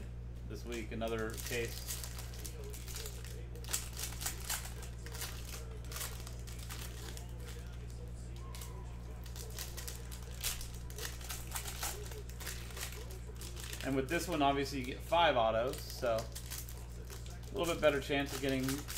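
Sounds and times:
foil wrapper crinkling: 0.6s - 18.9s.

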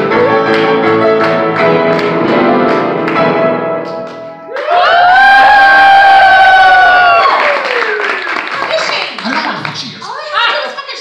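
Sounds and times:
piano and plucked guitar music: 0.0s - 4.6s
audience cheering: 4.5s - 9.4s.

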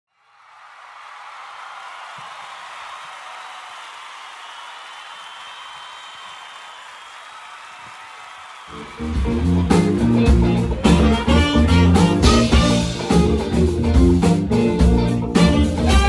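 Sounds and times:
audience applauding: 0.1s - 13.5s.

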